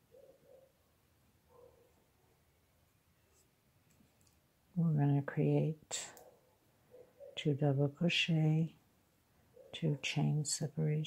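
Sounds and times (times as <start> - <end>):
woman speaking: 4.8 - 6.2, 7.4 - 8.8, 9.8 - 11.0.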